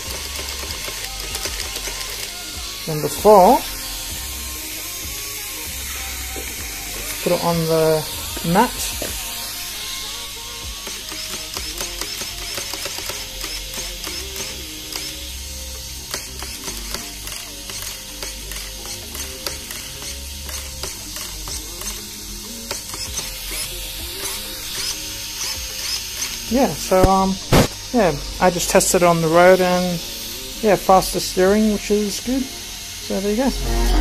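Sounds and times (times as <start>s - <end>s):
background music: 0.0s - 34.0s
servo whirring and clicking: 0.1s - 5.0s, 8.3s - 15.2s, 16.1s - 22.0s.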